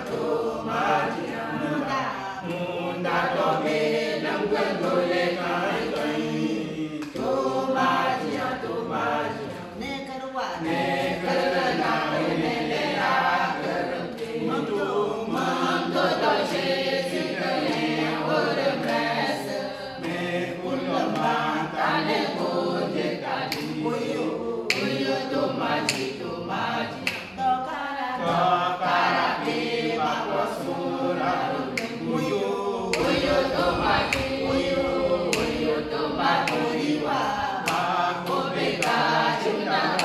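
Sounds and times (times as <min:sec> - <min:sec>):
sharp claps: 0:00.0 - 0:01.7, 0:02.4 - 0:09.8, 0:10.6 - 0:22.6, 0:23.2 - 0:27.4, 0:30.6 - 0:40.0
group singing a hymn: 0:00.0 - 0:40.0.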